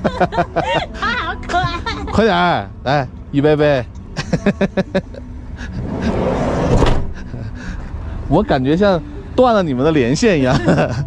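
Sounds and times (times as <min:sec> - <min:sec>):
sliding door rolling shut: 0:06.0 - 0:07.2
door latching clunk: 0:06.7 - 0:07.2.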